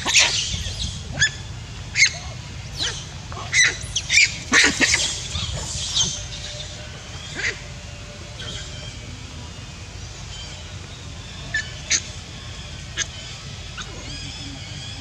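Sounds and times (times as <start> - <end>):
macaques giving high-pitched calls: 0.0 - 9.2, 11.5 - 15.0
steady low rumble: 0.0 - 15.0.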